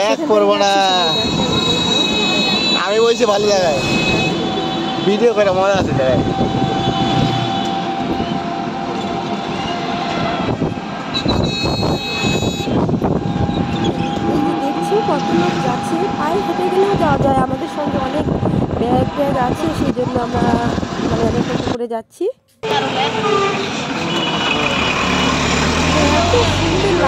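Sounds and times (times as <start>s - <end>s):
traffic noise: 0.0s - 27.0s
people talking: 14.3s - 23.7s, 25.8s - 27.0s.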